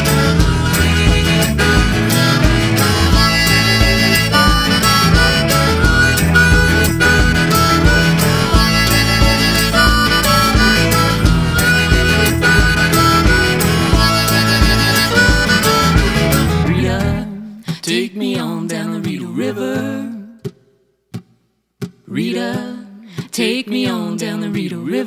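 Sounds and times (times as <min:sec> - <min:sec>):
harmonica solo: 0:00.0 - 0:17.2
steady beat: 0:00.0 - 0:17.3
folk band guitar: 0:00.0 - 0:17.9.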